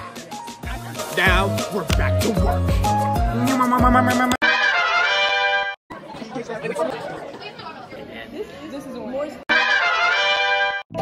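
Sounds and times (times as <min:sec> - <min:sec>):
chatter of many people: 0:05.9 - 0:09.5.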